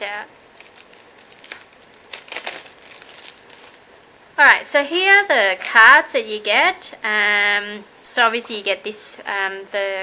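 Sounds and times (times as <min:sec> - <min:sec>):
plastic wrap crinkling: 0:00.0 - 0:04.2.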